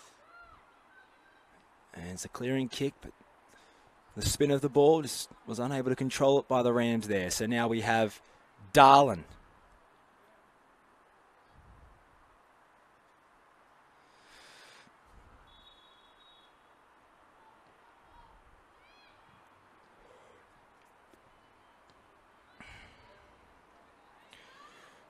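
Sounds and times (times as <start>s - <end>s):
faint outdoor ambience: 0.0s - 25.0s
distant high-pitched calls: 15.4s - 16.8s.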